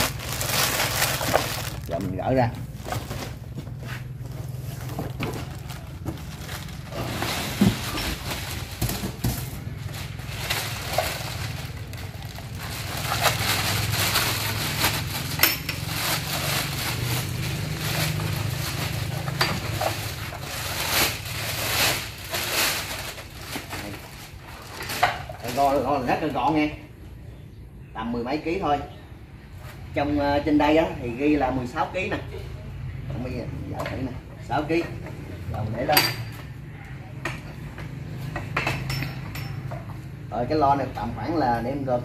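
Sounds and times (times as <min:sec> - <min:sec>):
plastic bag crinkling: 0:00.0 - 0:03.4, 0:04.5 - 0:25.6.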